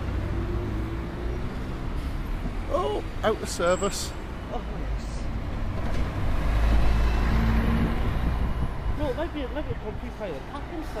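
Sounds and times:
bus driving past: 0:00.0 - 0:11.0.

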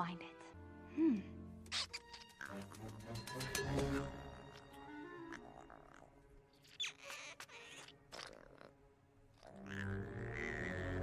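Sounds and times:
soft film score music: 0:00.0 - 0:11.0.

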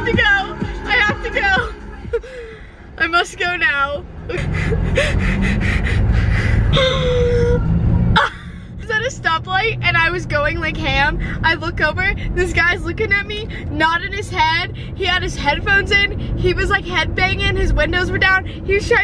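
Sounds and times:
bass-heavy pulsing sound: 0:00.0 - 0:18.4
woman laughing and giggling: 0:04.3 - 0:07.6.

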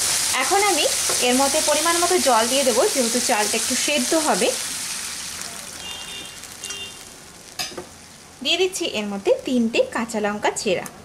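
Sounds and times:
water sizzling in hot pan: 0:00.0 - 0:09.9.

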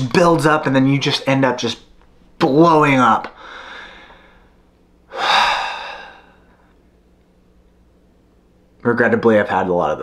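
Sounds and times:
man sighing: 0:05.1 - 0:06.4.

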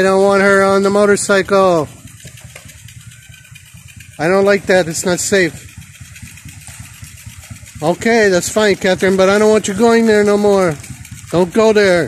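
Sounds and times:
dirt bike engine idling: 0:00.0 - 0:12.0.

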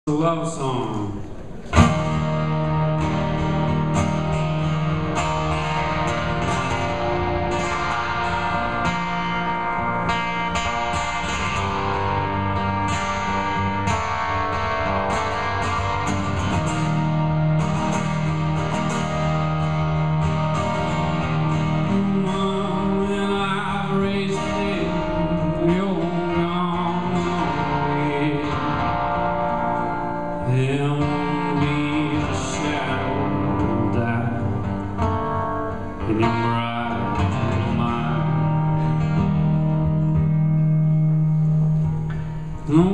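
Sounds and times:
acoustic guitar chords: 0:00.0 - 0:42.9
man singing: 0:21.8 - 0:29.6, 0:30.4 - 0:34.8, 0:36.0 - 0:39.0, 0:42.6 - 0:42.9.

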